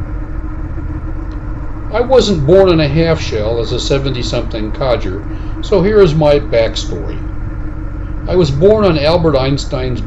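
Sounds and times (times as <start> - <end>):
motorcycle engine cruising: 0.0 - 10.0
road noise rumble: 0.0 - 10.0.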